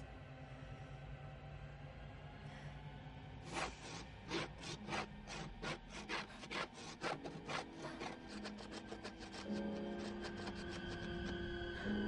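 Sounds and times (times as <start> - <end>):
fingers scraping paint off door: 3.5 - 11.6.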